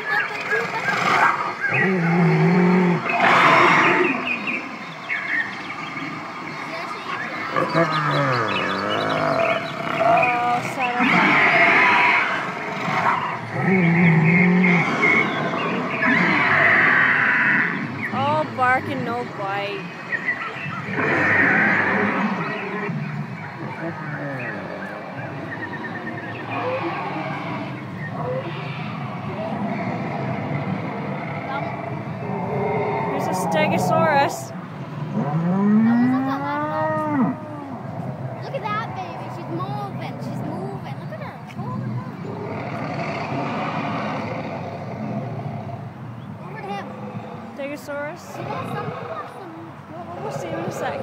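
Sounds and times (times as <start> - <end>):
animatronic dinosaur roar: 0.0 - 18.6, 19.2 - 40.9, 41.6 - 51.0.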